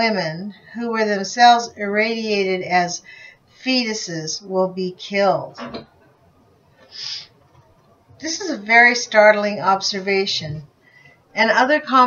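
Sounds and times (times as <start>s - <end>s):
person breathing in: 6.9s - 7.3s.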